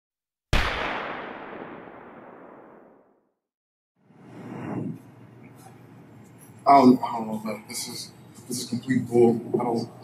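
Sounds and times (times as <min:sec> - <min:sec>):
boom impact: 0:00.6 - 0:03.2.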